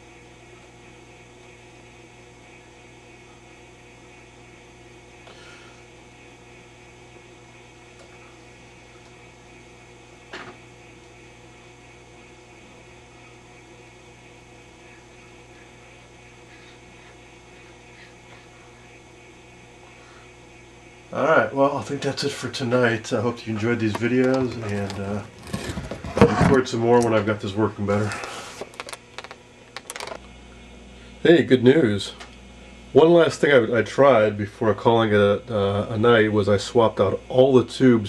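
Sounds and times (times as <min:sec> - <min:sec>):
television mains hum: 0:00.0 - 0:38.0.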